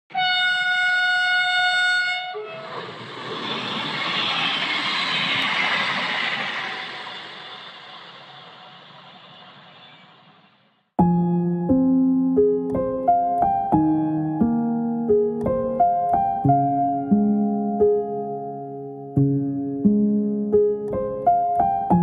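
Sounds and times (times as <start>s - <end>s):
horn blast: 0.1s - 2.9s
loud rushing noise: 2.4s - 10.8s.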